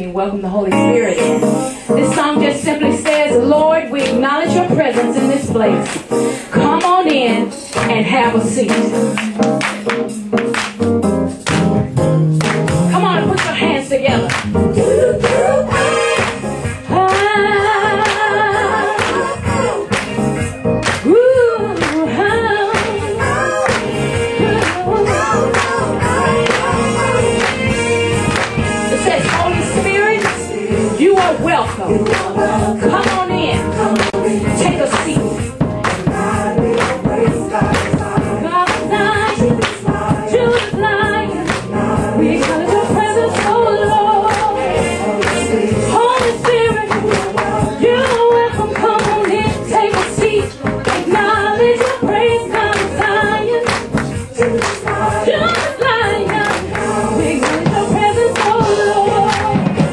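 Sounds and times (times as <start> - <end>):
woman singing into microphone: 0.0 - 10.6, 12.9 - 20.0, 20.9 - 59.9
musical accompaniment with beat: 0.5 - 59.9
electronic keyboard: 0.6 - 59.9
voices singing along: 12.4 - 59.9.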